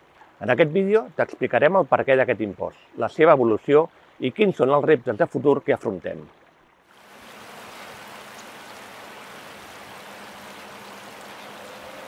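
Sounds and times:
river water rushing over stones: 6.9s - 12.0s.

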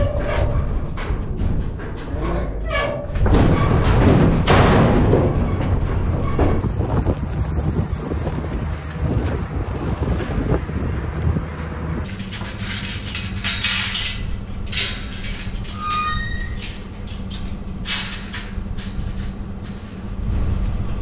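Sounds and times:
low road rumble: 6.5s - 12.2s
wind buffeting: 6.6s - 12.1s
engine hum: 6.6s - 12.2s.

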